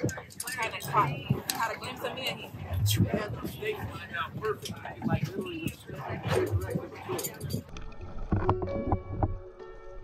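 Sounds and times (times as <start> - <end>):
people talking: 0.0 - 7.6
background music with held notes: 8.3 - 10.0.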